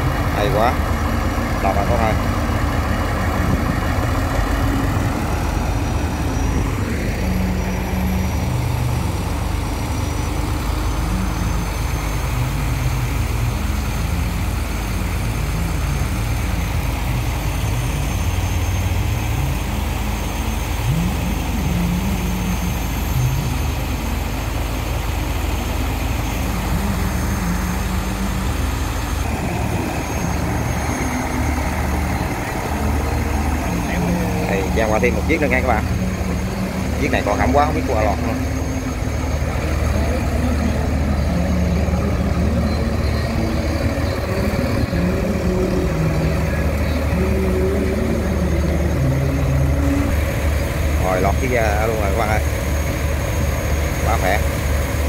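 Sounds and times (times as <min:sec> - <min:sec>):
heavy diesel engine running: 0:00.0 - 0:55.0.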